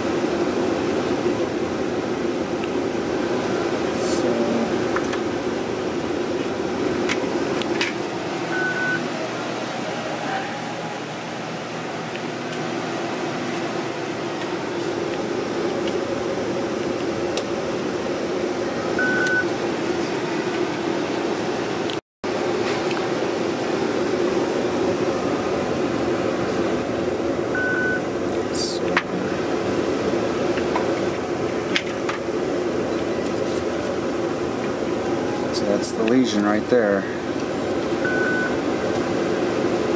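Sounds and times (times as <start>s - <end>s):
ventilation fan humming: 0.0s - 39.9s
short high beeps: 8.6s - 9.0s, 19.0s - 19.5s.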